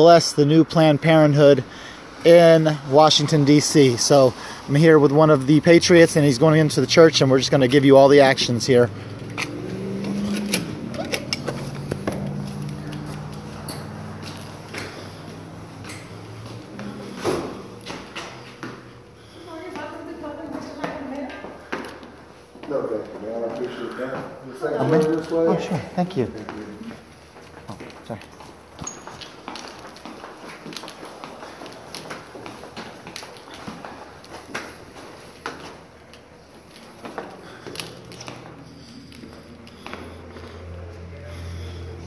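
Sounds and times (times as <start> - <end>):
footsteps on stairs: 9.0 - 24.4, 25.1 - 41.1.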